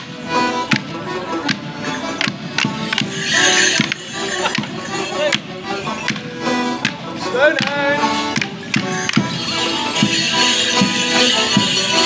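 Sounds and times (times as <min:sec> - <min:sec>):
folk dance band music: 0:00.0 - 0:12.0.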